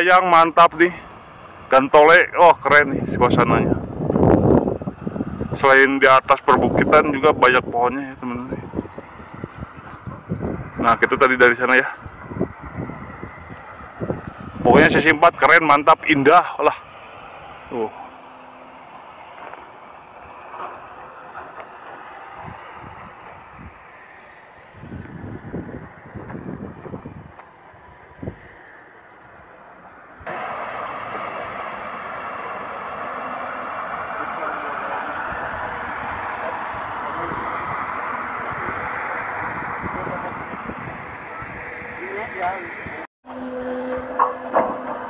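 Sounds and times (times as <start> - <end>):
excavator diesel engine running: 0.0 - 45.0.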